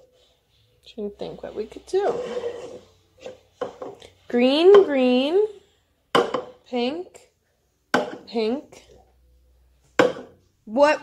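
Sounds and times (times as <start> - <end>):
plastic cup scraping on stone: 2.0 - 2.9.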